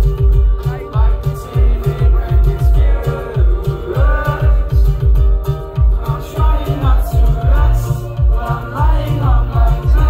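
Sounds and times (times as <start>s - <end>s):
heavy pulsing bass beat: 0.0s - 10.0s
plucked string instrument: 0.0s - 10.0s.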